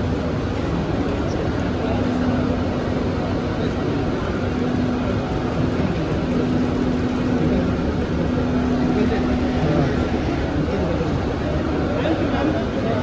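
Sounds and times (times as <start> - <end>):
airport terminal din: 0.0 - 13.0
low steady hum: 0.0 - 13.0.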